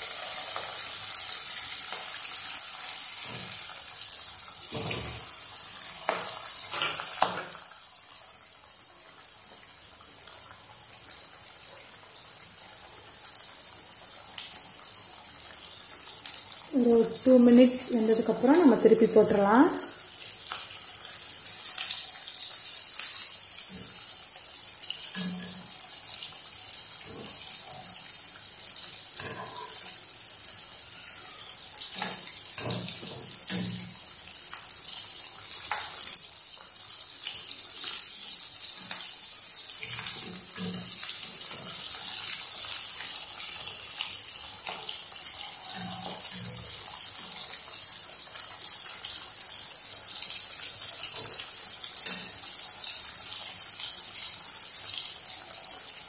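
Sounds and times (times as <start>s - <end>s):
deep-frying sizzle: 0.0s - 56.0s.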